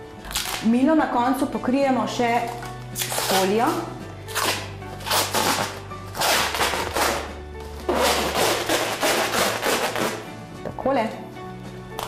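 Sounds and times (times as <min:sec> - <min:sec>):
background music with bass: 0:00.0 - 0:12.0
plastic wrap rustling rips: 0:00.2 - 0:00.7, 0:02.5 - 0:10.2.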